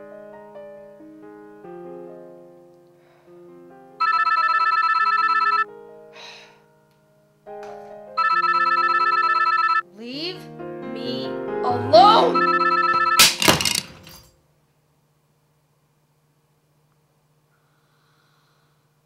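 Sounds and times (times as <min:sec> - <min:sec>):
soft piano music: 0:00.0 - 0:04.0, 0:05.6 - 0:13.2
telephone ringing: 0:04.0 - 0:05.7, 0:08.2 - 0:09.9, 0:12.3 - 0:13.4.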